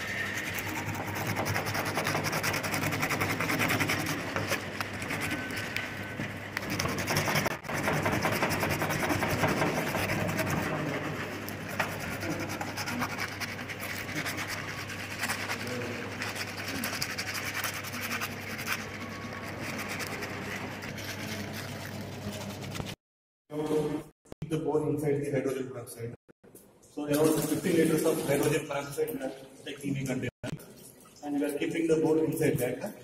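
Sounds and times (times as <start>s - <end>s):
sandpaper scratching on bone: 0.0s - 23.0s.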